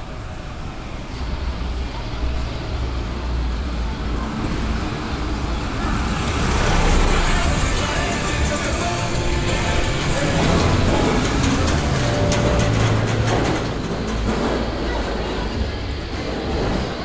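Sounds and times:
low rumble of city traffic: 0.0s - 17.0s
vehicle passing close by: 4.2s - 14.4s.

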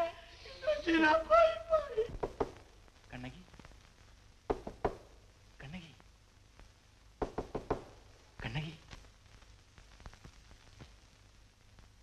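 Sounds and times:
woman moaning: 0.0s - 2.1s
sharp knocks: 2.1s - 2.6s, 4.5s - 5.1s, 7.2s - 8.0s.

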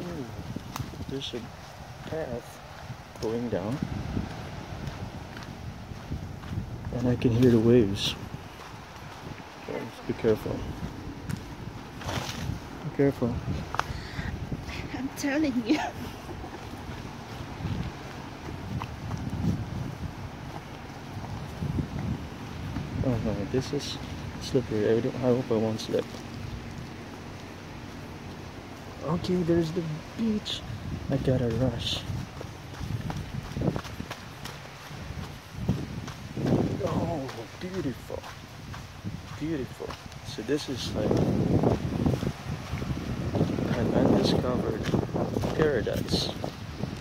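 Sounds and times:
footsteps on dirt trail: 0.0s - 47.0s
wind buffeting microphone: 0.0s - 47.0s.

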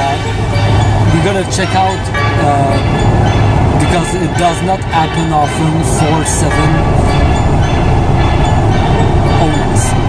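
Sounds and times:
car road rumble: 0.0s - 10.0s.

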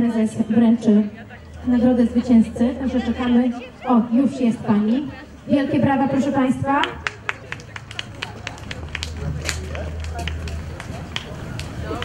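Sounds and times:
small crowd clapping: 6.8s - 12.0s.

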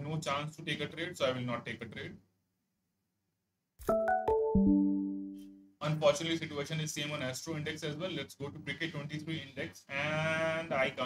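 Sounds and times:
electronic piano-like chime: 3.8s - 5.7s.

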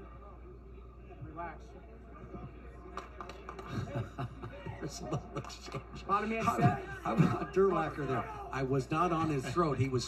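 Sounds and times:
overlapping voices: 2.5s - 8.6s
people shouting: 6.5s - 8.7s.

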